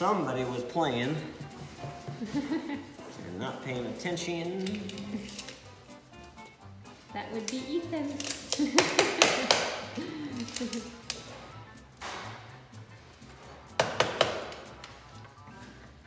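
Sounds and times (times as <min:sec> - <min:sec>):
hand tools knocking on workbench: 0:13.7 - 0:14.7.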